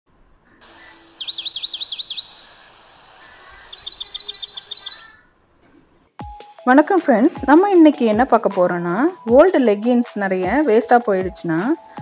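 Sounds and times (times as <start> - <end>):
songbird chirping: 0.6 - 5.4.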